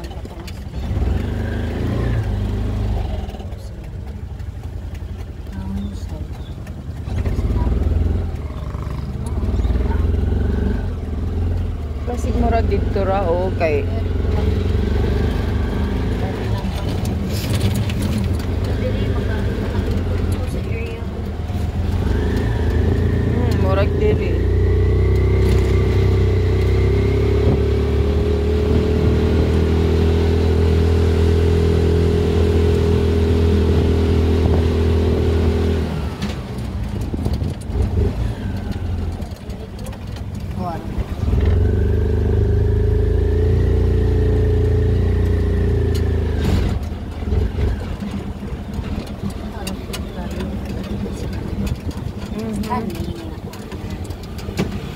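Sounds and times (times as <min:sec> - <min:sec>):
motor tricycle engine: 0:00.0 - 0:54.9.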